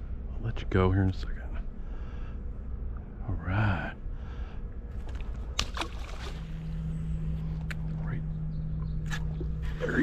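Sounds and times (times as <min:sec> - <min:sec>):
steady low hum: 0:00.0 - 0:10.0
steady low rumble: 0:00.0 - 0:10.0.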